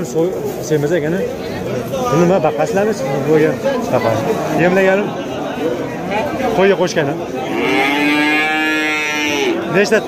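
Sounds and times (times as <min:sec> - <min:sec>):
farm animal calling: 0:07.5 - 0:09.8.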